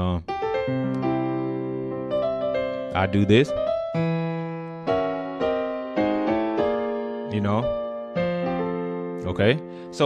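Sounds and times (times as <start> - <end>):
piano gospel chords: 0.0 - 10.0.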